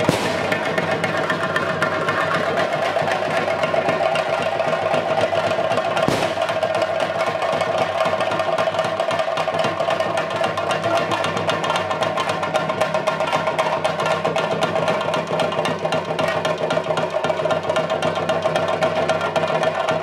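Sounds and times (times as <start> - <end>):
fast drumming: 0.0 - 20.0.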